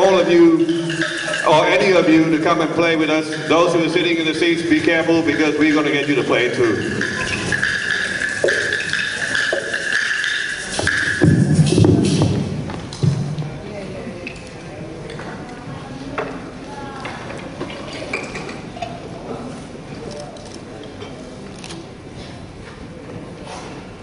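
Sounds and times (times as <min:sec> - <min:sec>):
voices: 0:00.0 - 0:09.6
high ringing tone: 0:05.6 - 0:11.4
hand drums knocked and tapped: 0:07.0 - 0:13.3.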